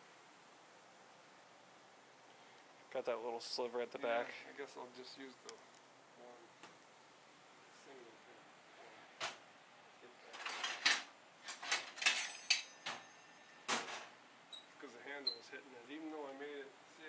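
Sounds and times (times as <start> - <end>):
tools scraping and knocking: 10.4 - 13.1.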